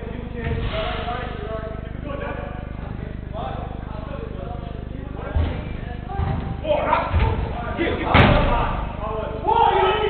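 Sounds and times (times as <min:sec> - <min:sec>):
football being struck: 0:05.4 - 0:08.8
men shouting: 0:09.4 - 0:10.0.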